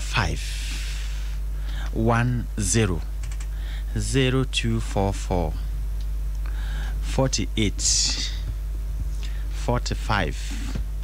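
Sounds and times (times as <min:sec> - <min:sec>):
person speaking: 0:00.0 - 0:01.1, 0:01.7 - 0:05.7, 0:07.0 - 0:08.6, 0:09.2 - 0:10.8
low electrical hum: 0:00.0 - 0:11.0
keyboard clicks: 0:03.2 - 0:03.5.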